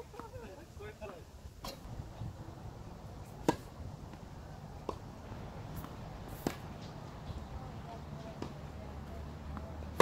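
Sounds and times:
tennis ball struck by racket: 0:03.2 - 0:05.1, 0:05.7 - 0:07.4, 0:08.2 - 0:08.6, 0:09.5 - 0:10.0.

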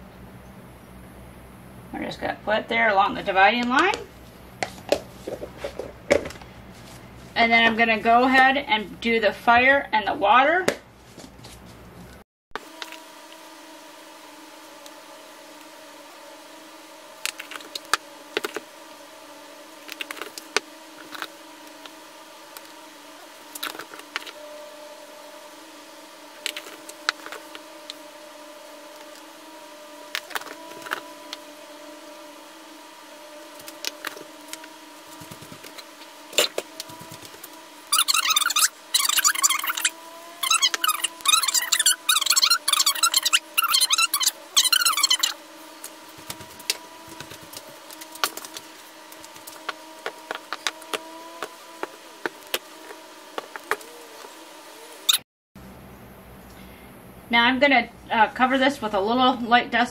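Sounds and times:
steady hum: 0:00.0 - 0:59.9
loud scratchy rustling: 0:06.6 - 0:07.4, 0:33.4 - 0:54.0.

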